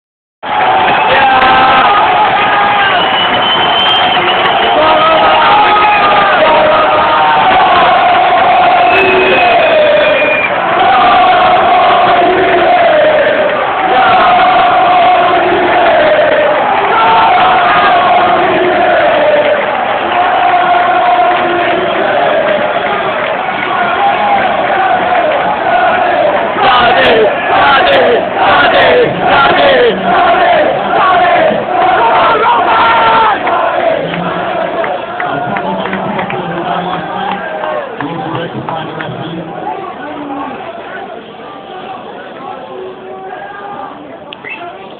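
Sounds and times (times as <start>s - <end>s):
crowd chanting rhythmically: 0.4s - 35.5s
football crowd singing: 0.5s - 37.8s.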